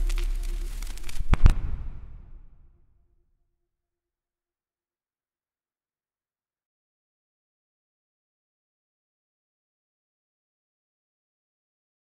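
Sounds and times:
sharp cracks: 0.0 - 2.6
crackling noise: 0.0 - 2.7.

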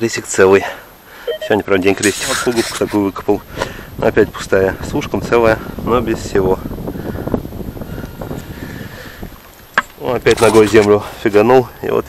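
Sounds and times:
wind rumbling on microphone: 2.9 - 10.5
dry soil scuffed and crumbled: 9.4 - 11.5.

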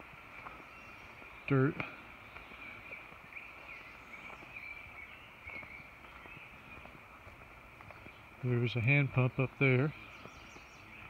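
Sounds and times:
distant birds and insects: 0.0 - 11.0
footsteps on leafy dirt trail: 0.0 - 11.0.

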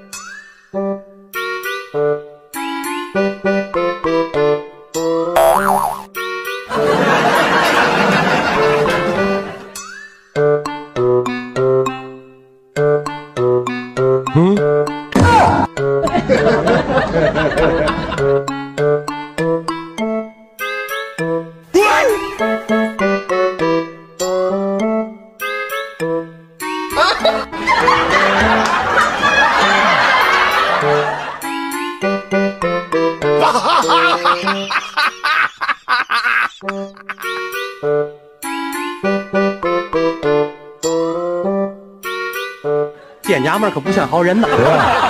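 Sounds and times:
music: 0.0 - 35.6, 36.3 - 45.0
springy cartoon boing: 5.4 - 6.1
people laughing: 6.7 - 9.6, 16.0 - 18.3, 27.0 - 31.4, 33.4 - 37.3, 44.4 - 45.0.

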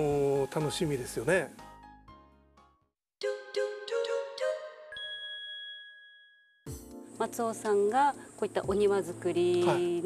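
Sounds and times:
bright chime: 4.9 - 6.6.

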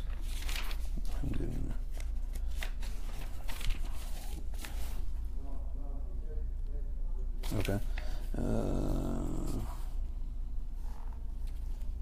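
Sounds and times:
book pages rustling: 0.0 - 5.2, 10.8 - 12.0
steady low hum: 0.0 - 12.0
low murmur of voice: 1.0 - 1.9, 5.4 - 9.9.

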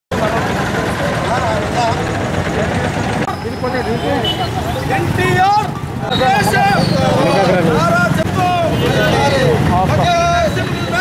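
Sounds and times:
outdoor street noise: 0.1 - 11.0
people talking: 0.1 - 11.0.

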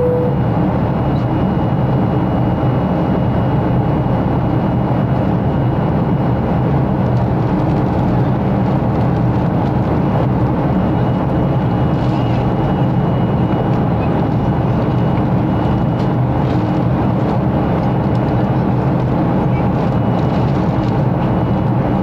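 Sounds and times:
faint high steady tone: 0.0 - 0.4
jet engine cabin roar: 0.0 - 22.0.

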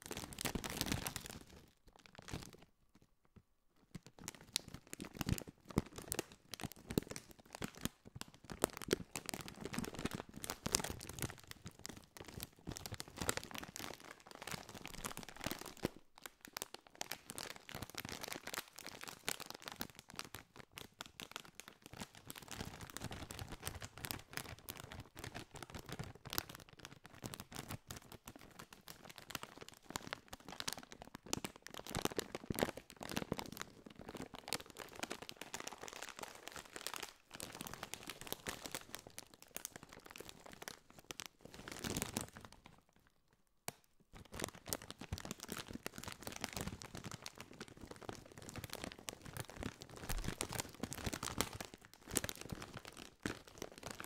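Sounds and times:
plastic snack bag crinkling: 0.0 - 3.1, 3.8 - 54.0.

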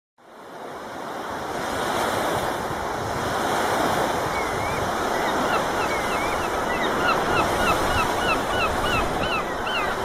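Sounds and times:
waves washing on beach: 0.2 - 10.0.

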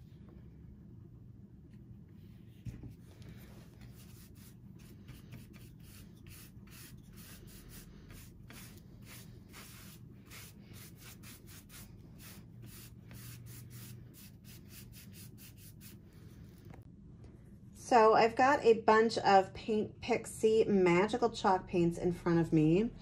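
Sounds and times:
scratchy brush strokes: 2.2 - 16.8.

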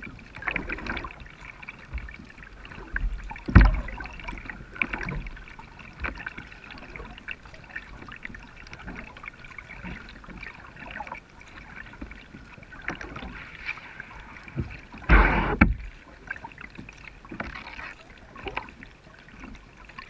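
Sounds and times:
paddle splashes: 0.0 - 20.0
loud splash or knock: 14.6 - 15.9.

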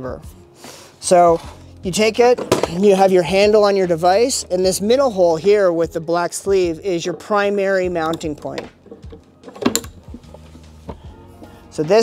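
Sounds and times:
metal clicks of carabiner clipping: 8.0 - 10.5.

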